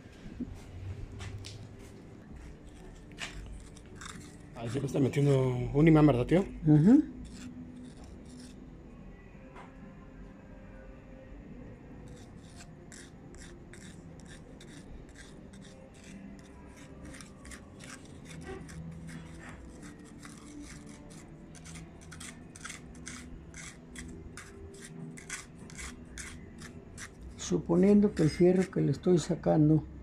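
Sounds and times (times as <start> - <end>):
magnet scraping wet sediment: 2.7 - 5.4, 7.2 - 8.6, 12.1 - 28.8.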